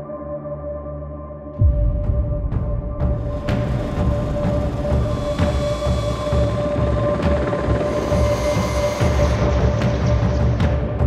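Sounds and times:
turbine engine whine: 3.0 - 10.9
helicopter rotor beating: 3.3 - 10.6.

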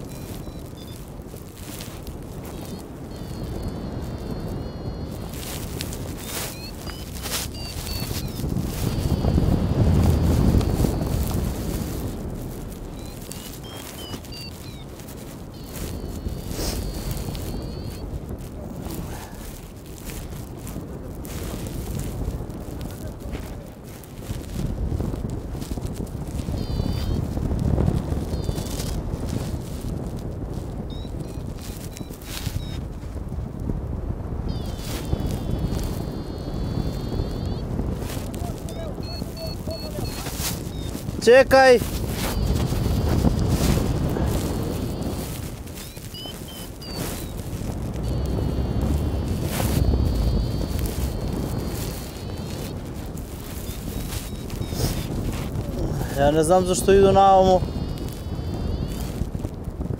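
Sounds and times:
wind buffeting microphone: 0.0 - 59.9
faint high chirps: 12.9 - 14.9, 15.5 - 18.0, 45.8 - 47.4.

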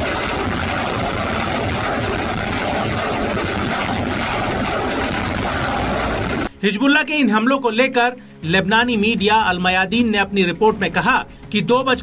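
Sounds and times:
rocket motor rushing: 0.0 - 6.5.

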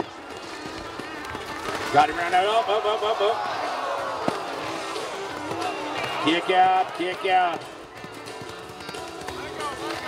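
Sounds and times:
hoofbeats of galloping horse: 0.0 - 2.6, 4.7 - 10.0
crowd noise: 0.0 - 10.0.

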